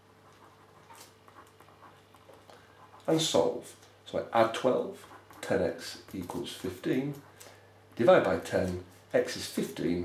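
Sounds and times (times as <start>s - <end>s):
felt-tip pen scratching on paper: 0.0s - 3.4s, 4.8s - 7.4s
low steady hum: 0.0s - 10.0s.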